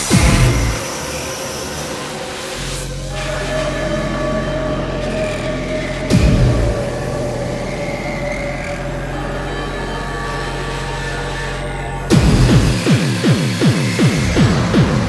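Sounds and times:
heavy distorted kick drum: 0:00.0 - 0:00.9, 0:06.1 - 0:07.0, 0:12.1 - 0:15.0
pounding kick drums: 0:00.0 - 0:00.9, 0:06.1 - 0:06.9, 0:12.1 - 0:15.0
low drone: 0:00.0 - 0:15.0.

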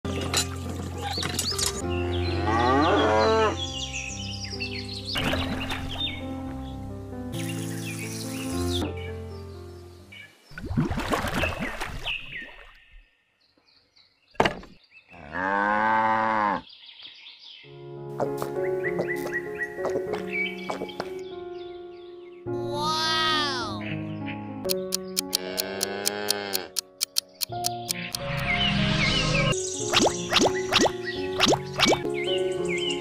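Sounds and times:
background music: 0:00.1 - 0:11.0, 0:17.6 - 0:33.0
cow mooing: 0:02.3 - 0:03.6, 0:15.2 - 0:16.6, 0:25.3 - 0:26.8
click: 0:24.6 - 0:28.2.

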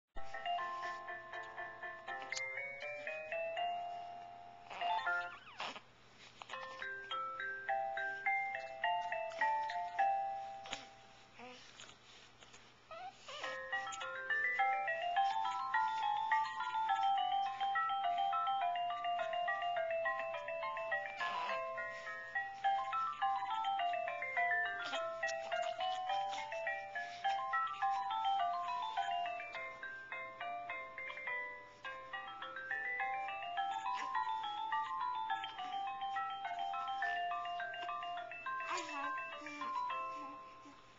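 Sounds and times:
electronic toy melody: 0:00.2 - 0:05.7, 0:06.5 - 0:10.8, 0:12.9 - 0:40.9.

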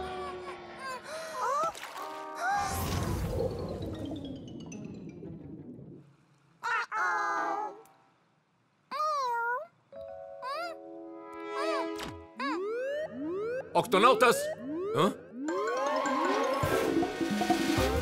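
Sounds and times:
playful music with boing glides: 0:10.0 - 0:18.0
rising repeating siren: 0:11.6 - 0:17.7.

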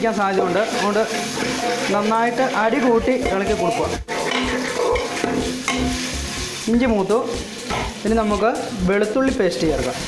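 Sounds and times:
person talking: 0:00.0 - 0:01.2, 0:01.9 - 0:04.0, 0:06.6 - 0:07.4, 0:08.0 - 0:10.0
leaves sizzling in hot oil: 0:00.0 - 0:10.0
metal ladle stirring: 0:00.1 - 0:08.8.

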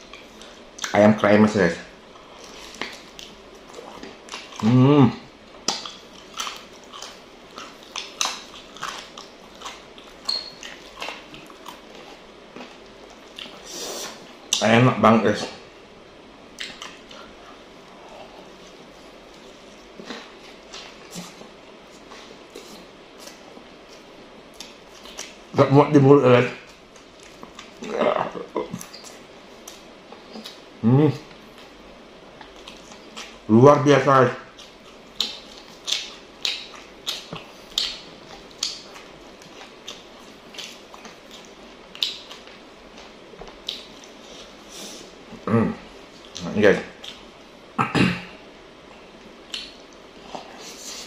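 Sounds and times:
man chewing food: 0:00.0 - 0:01.0, 0:01.9 - 0:14.6, 0:15.5 - 0:25.6, 0:26.6 - 0:33.5, 0:34.4 - 0:51.0
steady low hiss: 0:00.0 - 0:51.0
soft mouth clicks and smacks: 0:05.6 - 0:11.2, 0:34.6 - 0:40.0, 0:49.5 - 0:51.0.

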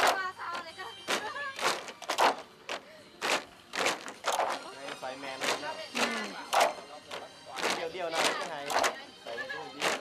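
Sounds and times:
bamboo poles clacking: 0:00.0 - 0:09.0, 0:09.7 - 0:10.0.

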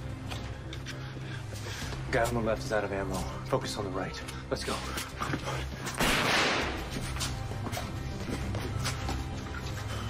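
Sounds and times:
tense background music: 0:00.0 - 0:10.0
pistol shot echoing: 0:06.0 - 0:06.8.

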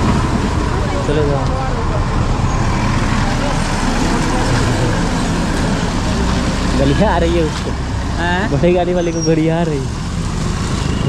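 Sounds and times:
traffic rumble and hiss: 0:00.0 - 0:11.0.

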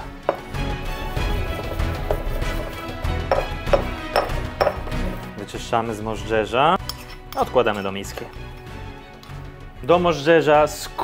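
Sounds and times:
background music: 0:00.0 - 0:11.0
stone pestle grinding in mortar: 0:00.3 - 0:05.3, 0:06.8 - 0:08.6.

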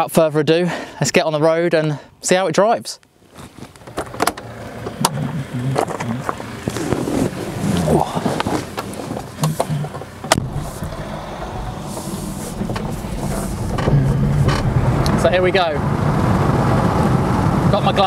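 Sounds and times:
tyres on gravel: 0:03.2 - 0:15.7.

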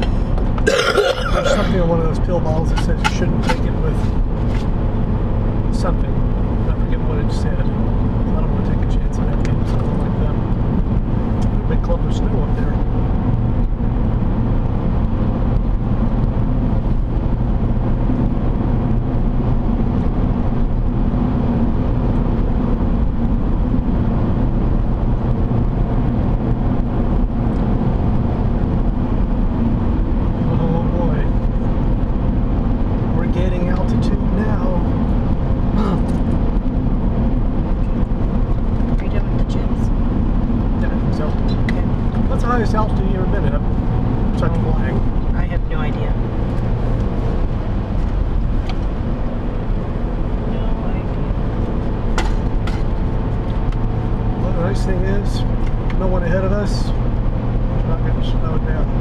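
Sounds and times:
car road and engine noise: 0:00.0 - 0:59.0.

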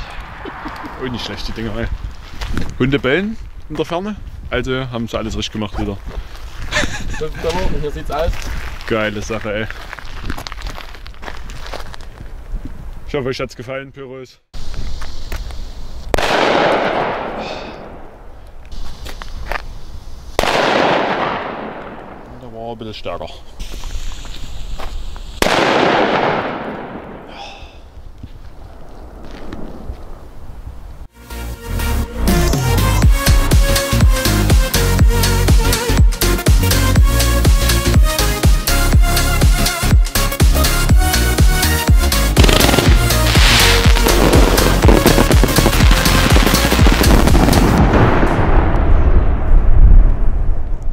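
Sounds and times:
firecracker bang with echo: 0:16.1 - 0:18.2, 0:20.4 - 0:22.2, 0:25.4 - 0:27.4, 0:42.4 - 0:48.8
low rumble: 0:42.4 - 0:50.9.

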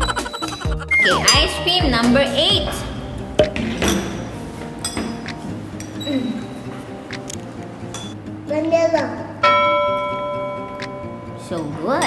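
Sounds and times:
light background music: 0:00.0 - 0:12.0
metal spoons clinking on bowls: 0:04.8 - 0:06.4, 0:11.0 - 0:12.0.

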